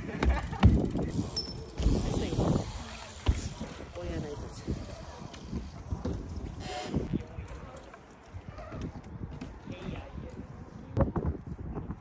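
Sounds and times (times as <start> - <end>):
bike clicking and ticking: 0.0 - 8.4
bike rolling on plywood ramps: 0.0 - 12.0.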